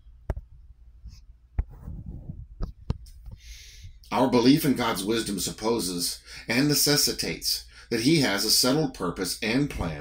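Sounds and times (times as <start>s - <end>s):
short breath drawn in: 3.4s - 4.0s.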